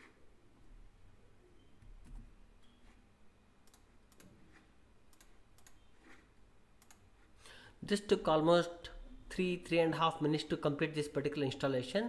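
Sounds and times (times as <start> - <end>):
computer mouse clicks: 3.6 - 7.1.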